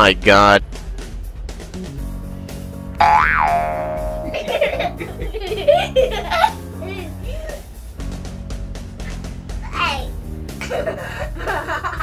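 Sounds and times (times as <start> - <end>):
background music: 0.0 - 12.0
cartoon boing sound effect: 3.0 - 4.4.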